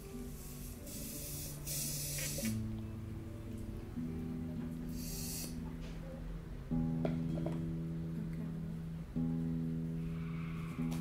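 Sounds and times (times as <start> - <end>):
soft music with low notes: 0.0 - 11.0
short hiss: 0.8 - 2.6.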